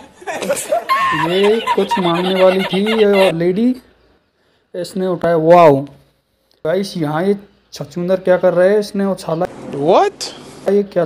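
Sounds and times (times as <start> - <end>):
man laughing: 0.0 - 3.4.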